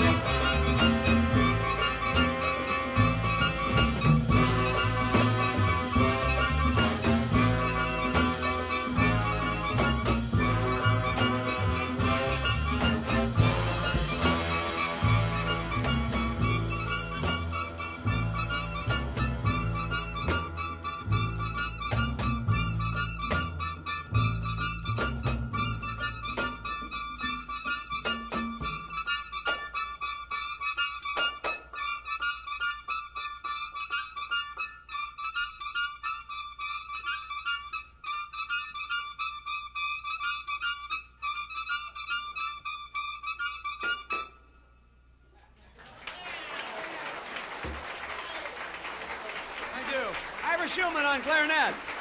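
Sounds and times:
big band jazz: 0.0 - 34.4
audience applauding: 45.6 - 52.0.

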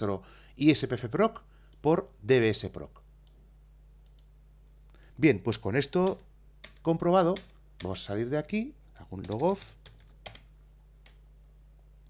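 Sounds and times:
low electrical hum: 0.0 - 12.0
computer mouse clicks: 4.0 - 4.4, 9.2 - 11.2.

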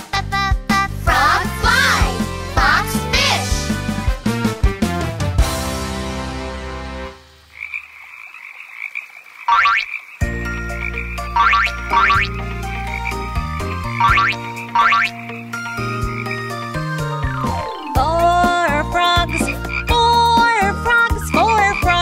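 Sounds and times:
children's song: 0.0 - 4.0, 17.4 - 22.0
cartoon frog croaks: 7.5 - 15.5.

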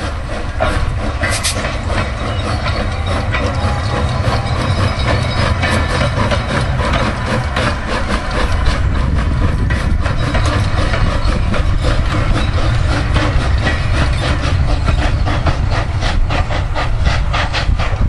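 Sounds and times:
steady low rumble: 0.0 - 18.0
steam locomotive chuffing: 0.0 - 18.0.

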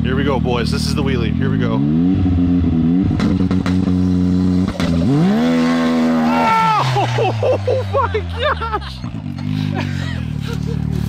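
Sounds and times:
engine at high revs: 1.0 - 11.0.

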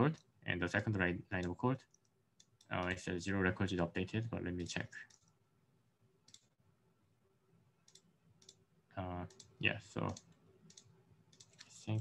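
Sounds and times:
computer mouse clicks: 0.1 - 3.0, 5.0 - 5.4, 6.2 - 6.6, 7.8 - 8.6, 9.2 - 12.0.

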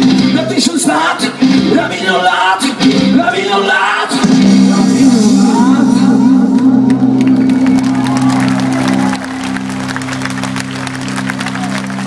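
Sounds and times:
rock band holding low chord: 0.0 - 12.0
crowd clapping and cheering: 6.5 - 12.0.

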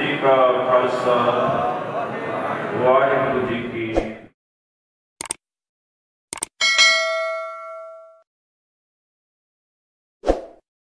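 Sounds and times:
notification bell ding: 6.6 - 8.2.

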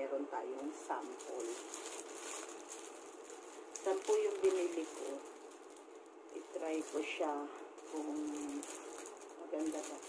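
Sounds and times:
person speaking: 0.0 - 1.9, 3.7 - 5.4, 6.3 - 10.0
plastic package rustling: 0.5 - 10.0.

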